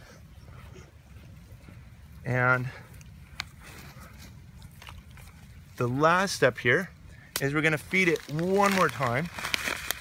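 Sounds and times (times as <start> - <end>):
hand scraping dry soil: 7.3 - 10.0.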